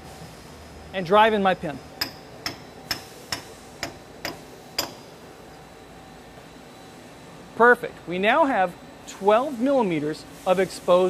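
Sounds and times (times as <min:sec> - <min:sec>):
hammer taps on steel: 0:02.0 - 0:05.0.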